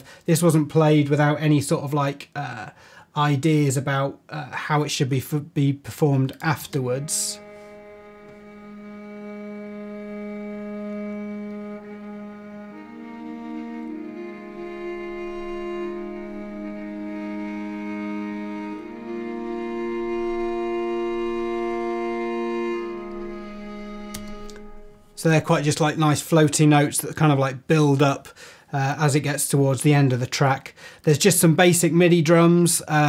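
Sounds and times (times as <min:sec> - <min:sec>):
cello holding slow notes: 0:06.4 - 0:25.7.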